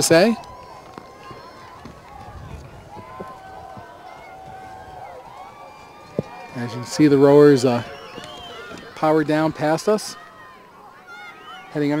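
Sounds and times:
distant crowd shouting and cheering: 0.0s - 12.0s.

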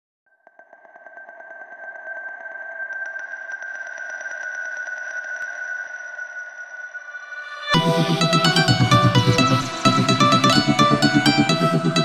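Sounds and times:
high whistle-like electronic tone: 3.2s - 12.0s.

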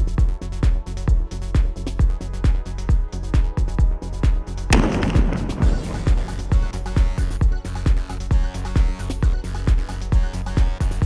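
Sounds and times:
sharp blast: 4.7s - 7.4s.

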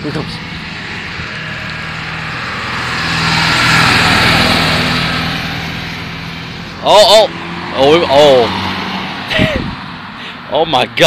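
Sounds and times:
pickup truck driving past: 0.0s - 10.6s.

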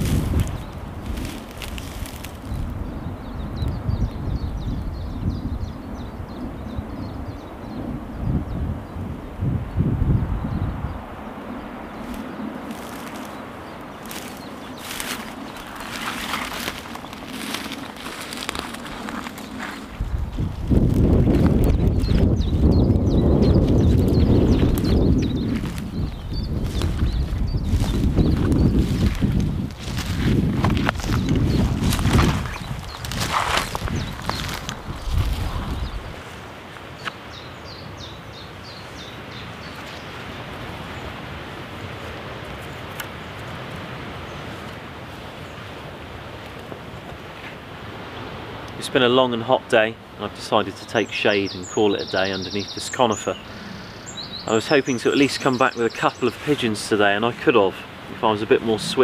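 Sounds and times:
footsteps through long grass: 0.0s - 3.0s, 11.9s - 37.5s
outdoor background noise: 0.0s - 59.0s
wind buffeting microphone: 0.0s - 59.0s.

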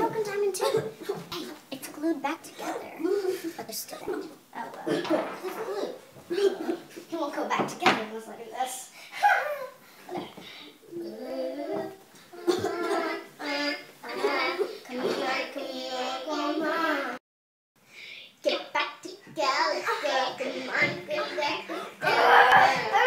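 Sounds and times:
girls talking: 0.0s - 17.2s, 18.4s - 23.0s
girls sing-song vocalising: 9.1s - 17.2s, 19.2s - 23.0s.

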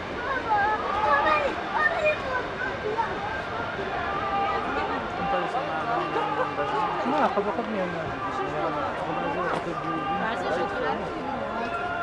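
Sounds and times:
overlapping voices and chatter: 0.0s - 12.0s.

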